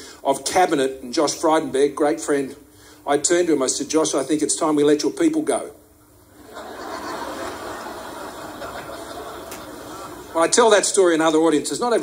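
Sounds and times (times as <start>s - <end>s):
audience laughter: 6.3s - 10.5s.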